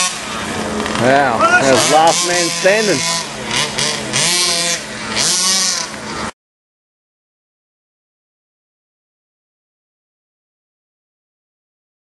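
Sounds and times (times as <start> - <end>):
small two-stroke engines revving: 0.0 - 6.4.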